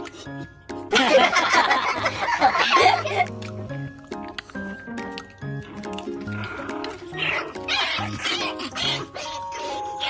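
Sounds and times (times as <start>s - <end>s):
background music with steady beat: 0.0s - 7.7s.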